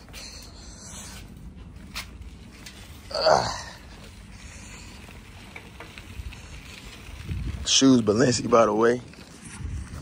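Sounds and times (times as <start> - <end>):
bicycle tyres rolling: 0.0 - 10.0
wind on microphone: 6.2 - 7.7, 9.3 - 10.0.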